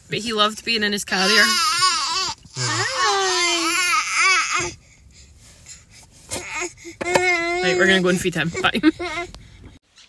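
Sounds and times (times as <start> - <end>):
baby crying: 1.2 - 4.8.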